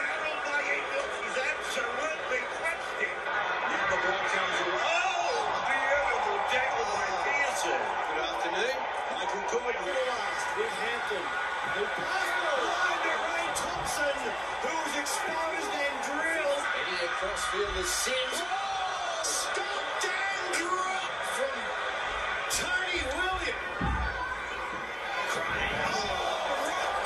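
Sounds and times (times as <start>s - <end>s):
commentator speaking: 0.0s - 21.8s, 22.4s - 23.9s
stadium crowd noise: 0.0s - 27.0s.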